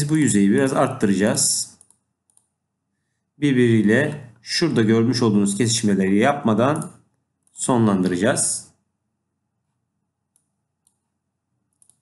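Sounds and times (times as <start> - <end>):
computer mouse clicks: 1.7 - 2.6, 10.3 - 11.1, 11.7 - 12.0.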